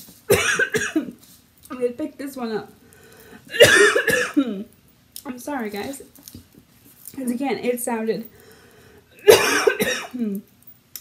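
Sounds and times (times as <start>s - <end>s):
woman coughing: 0.3s - 1.2s, 3.5s - 4.7s, 9.2s - 10.3s.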